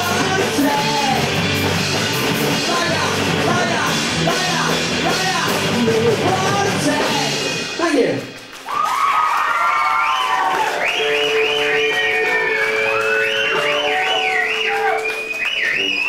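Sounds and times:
rock band playing live: 0.0s - 8.7s, 10.7s - 16.0s.

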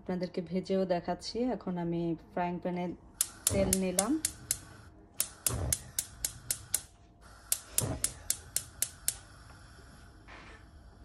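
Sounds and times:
gas stove igniter clicking: 3.2s - 9.8s.

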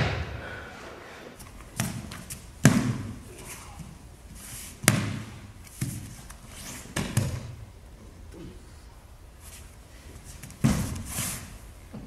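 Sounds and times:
body impact on mat: 10.4s - 11.1s.

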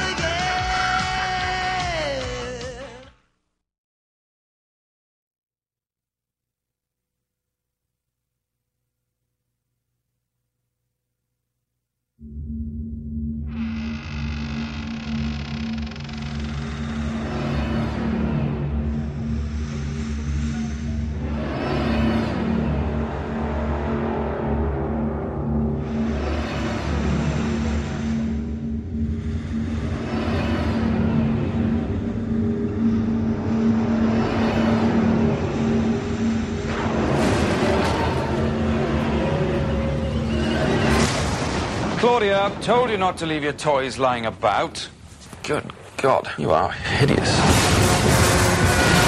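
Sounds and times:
low drone: 12.2s - 42.9s, 47.2s - 49.0s
deep rumble: 12.2s - 43.6s.

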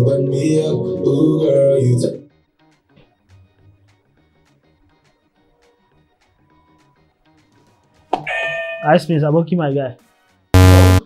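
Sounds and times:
game show buzzer tone: 10.6s - 11.0s.

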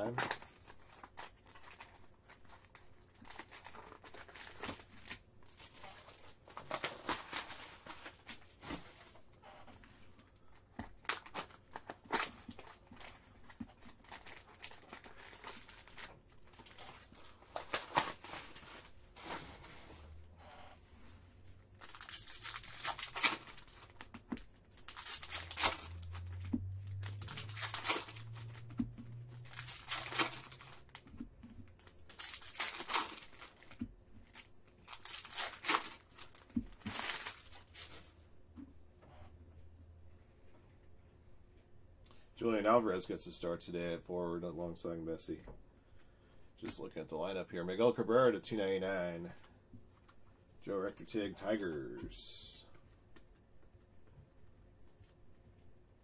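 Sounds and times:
packaging crinkling and tearing: 0.1s - 8.7s, 10.8s - 19.1s, 21.7s - 38.1s.

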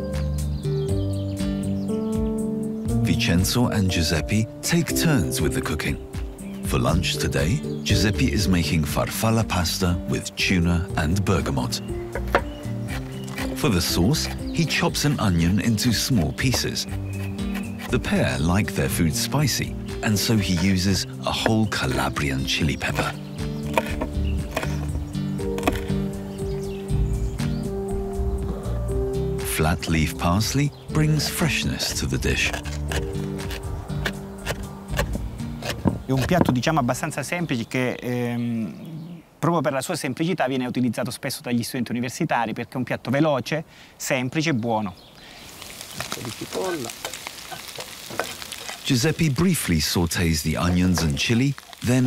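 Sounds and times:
background music: 0.0s - 37.7s
knife chopping on wooden board: 12.1s - 14.4s, 15.9s - 18.5s, 21.4s - 26.0s, 32.5s - 36.7s
onion sizzling in oil: 45.3s - 52.0s.

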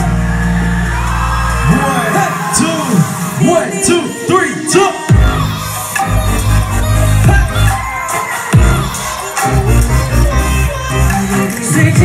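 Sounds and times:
pop song through club speakers: 0.0s - 12.0s.

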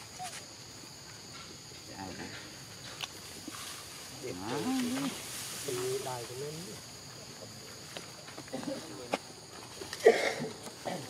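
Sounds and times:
monkey calls: 0.0s - 0.4s.

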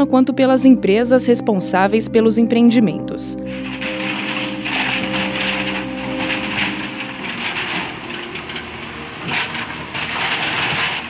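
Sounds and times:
debris crashing down: 3.5s - 11.0s
wood cracking and splintering: 3.6s - 11.0s.

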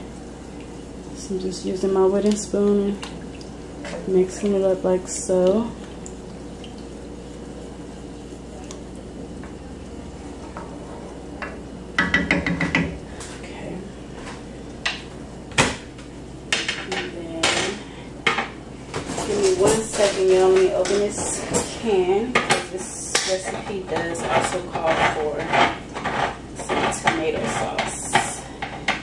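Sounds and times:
low steady hum: 0.0s - 29.0s
dishes and utensils clattering: 16.6s - 29.0s.

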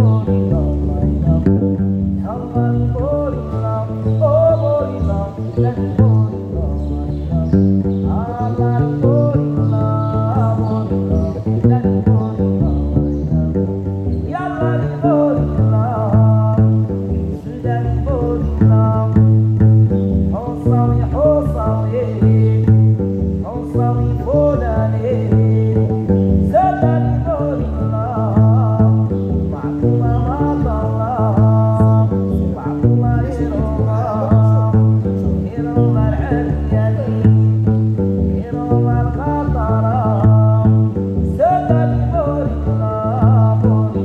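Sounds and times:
plucked long-necked lute: 0.0s - 44.0s.

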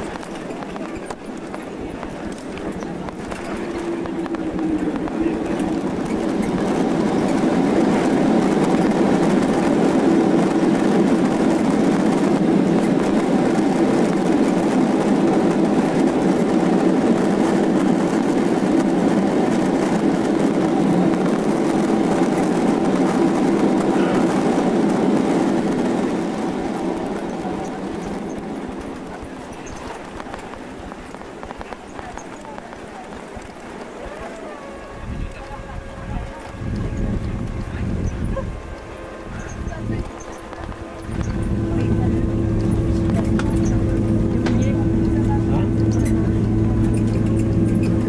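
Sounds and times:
jet engine and runway noise: 0.0s - 48.0s.

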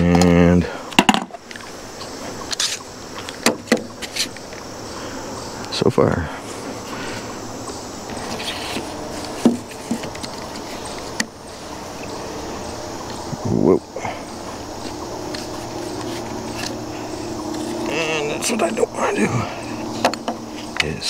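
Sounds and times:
outdoor background noise: 0.0s - 21.0s.

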